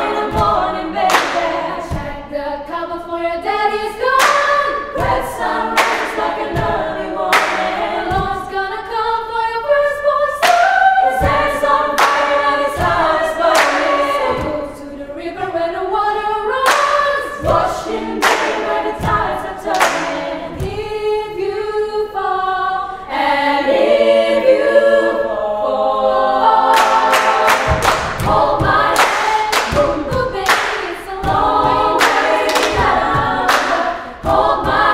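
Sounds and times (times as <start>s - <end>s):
female choir singing: 0.0s - 34.9s
sharp percussive hits: 26.7s - 34.9s.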